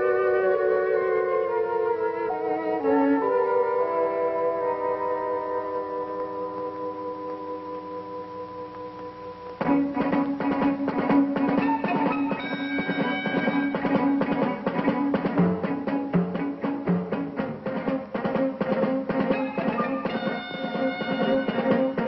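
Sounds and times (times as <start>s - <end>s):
higher sustained notes: 0.0s - 16.5s.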